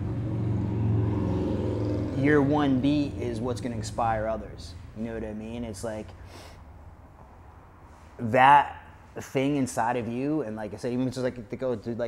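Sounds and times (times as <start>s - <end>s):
low steady rumble with hum: 0.0s - 12.0s.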